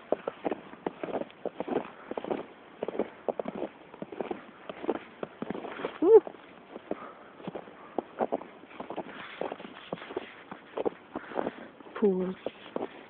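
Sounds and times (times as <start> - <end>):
footsteps crunching through snow: 0.0 - 13.0.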